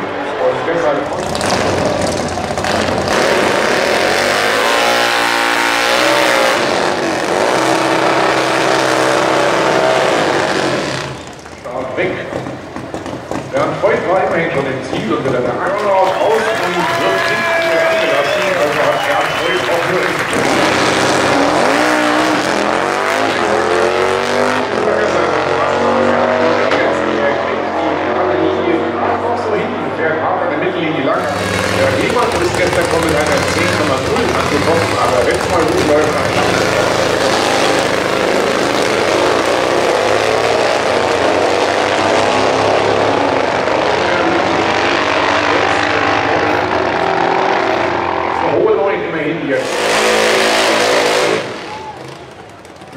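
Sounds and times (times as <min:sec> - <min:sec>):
drag bike engines revving: 0:00.0 - 0:52.9.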